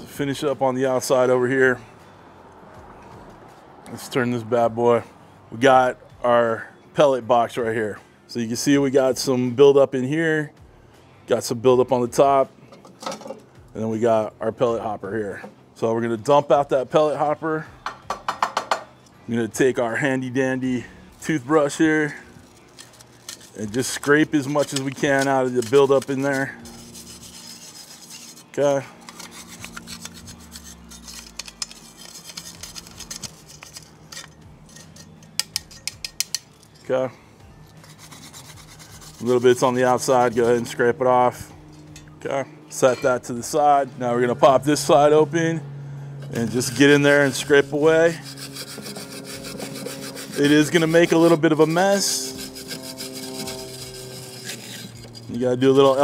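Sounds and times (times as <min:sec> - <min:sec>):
wire brush scraping metal: 0:19.8 - 0:42.1, 0:42.7 - 0:43.7, 0:46.2 - 0:56.0
brush clicks on metal: 0:29.0 - 0:36.8.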